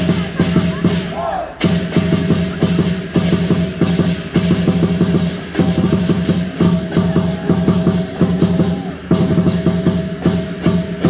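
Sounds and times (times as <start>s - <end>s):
hand cymbals crashing: 0.0s - 11.0s
large drum beating: 0.0s - 11.0s.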